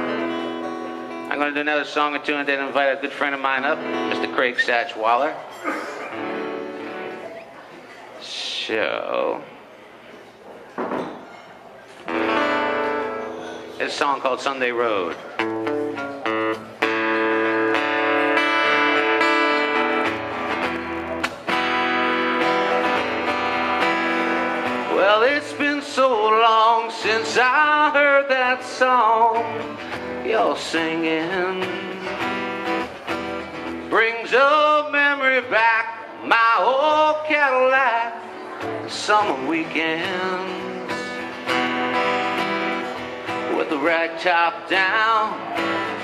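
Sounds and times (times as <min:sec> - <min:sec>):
acoustic guitar chord strummed: 0:00.0 - 0:07.3, 0:12.1 - 0:46.0.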